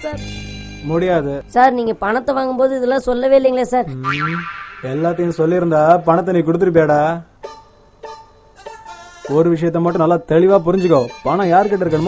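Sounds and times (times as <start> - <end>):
man talking: 0.8 - 1.5, 4.8 - 7.3, 9.3 - 12.0
comic falling glide effect: 4.0 - 6.3.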